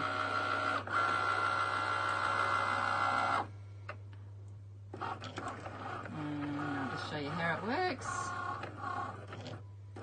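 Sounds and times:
cutting machine motor whine: 0:00.0 - 0:03.5, 0:05.0 - 0:10.0.

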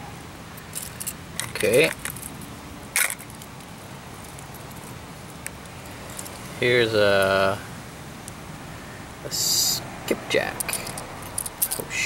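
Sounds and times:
metal hooks clinking on plastic box: 0:00.6 - 0:03.5, 0:10.5 - 0:11.9.

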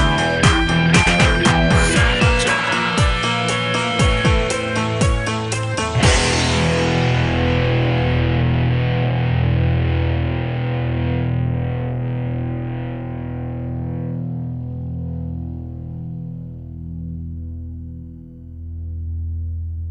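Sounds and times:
distorted electric guitar chord: 0:00.0 - 0:19.7.

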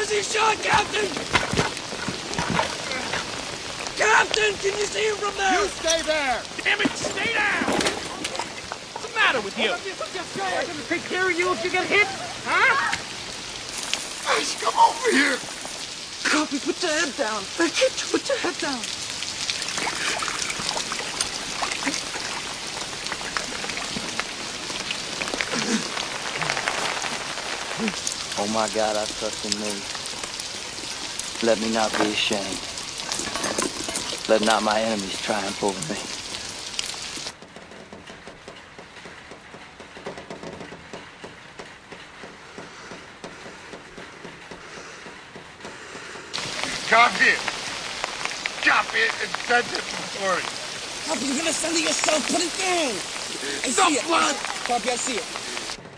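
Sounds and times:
heavy rain hiss: 0:00.0 - 0:37.4, 0:38.8 - 0:55.9.

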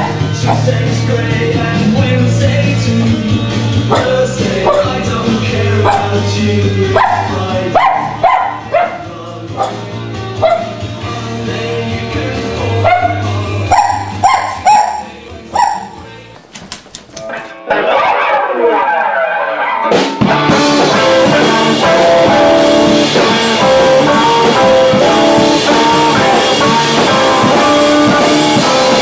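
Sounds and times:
music with low drone: 0:00.0 - 0:16.6
dog yipping: 0:05.8 - 0:06.2, 0:07.0 - 0:09.0, 0:09.6 - 0:09.8, 0:10.4 - 0:10.8, 0:12.8 - 0:16.0.

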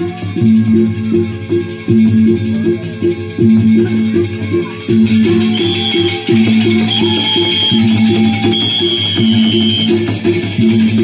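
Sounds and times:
low gamelan note: 0:00.0 - 0:10.8
gamelan metallic notes: 0:00.0 - 0:11.0
high reed-like tone: 0:05.2 - 0:10.1.

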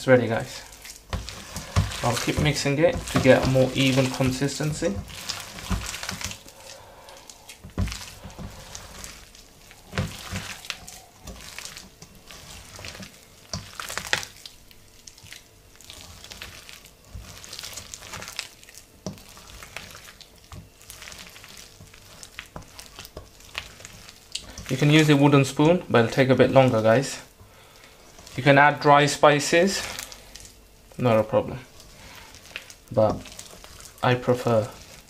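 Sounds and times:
wet batter squelching: 0:00.0 - 0:35.0.

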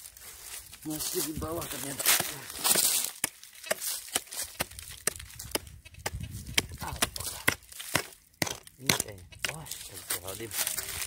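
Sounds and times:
hand pick striking gravelly soil: 0:00.9 - 0:11.0.

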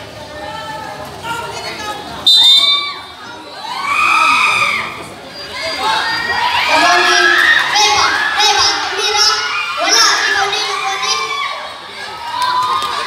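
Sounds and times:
crowd shouting and cheering: 0:00.0 - 0:13.0
whistle blast: 0:02.2 - 0:03.0.

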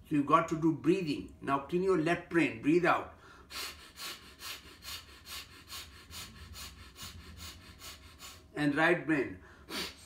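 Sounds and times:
man's forceful nasal breaths: 0:03.2 - 0:08.6, 0:09.4 - 0:10.0.

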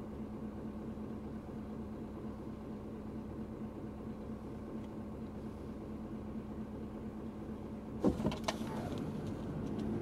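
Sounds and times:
car engine idling: 0:00.0 - 0:10.0
constant tone: 0:00.0 - 0:10.0.

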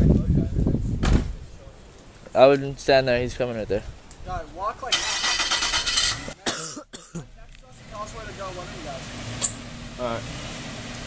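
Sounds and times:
engine and tyre noise: 0:04.9 - 0:06.4, 0:07.6 - 0:11.0
sharp bursts: 0:04.9 - 0:06.4.

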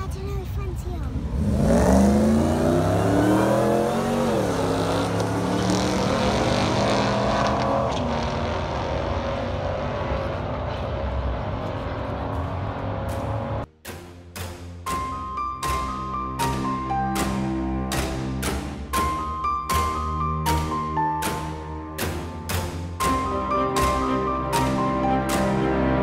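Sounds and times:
engines accelerating down drag strip: 0:01.1 - 0:13.7
music with drum hits: 0:13.8 - 0:25.8.

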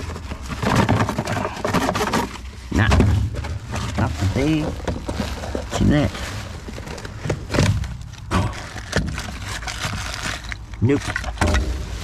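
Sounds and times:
sharp knocks and clatters: 0:00.0 - 0:05.8
rustling cardboard and plastic: 0:00.0 - 0:12.0.

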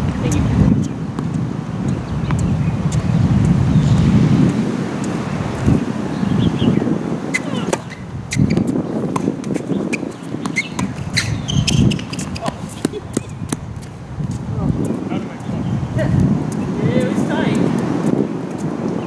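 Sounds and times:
wind buffeting microphone: 0:00.0 - 0:19.0
tennis ball ticks and knocks: 0:07.4 - 0:15.5, 0:16.5 - 0:19.0.

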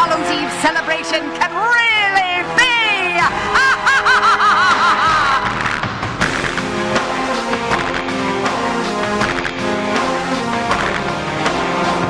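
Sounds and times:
orchestral show music: 0:00.0 - 0:12.0
high cackling laugh: 0:03.5 - 0:05.8.

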